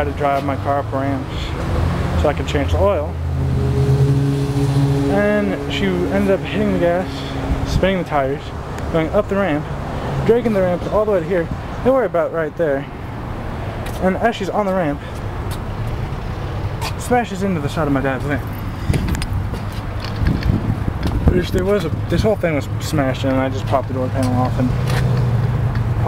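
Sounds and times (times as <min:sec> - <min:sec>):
car engine idling: 0:00.2 - 0:26.0.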